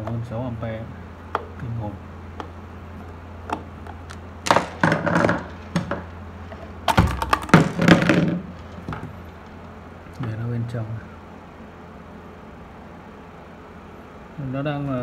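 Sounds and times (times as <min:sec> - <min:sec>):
steady low hum: 0:00.0 - 0:15.0
plastic clatter: 0:03.5 - 0:09.2.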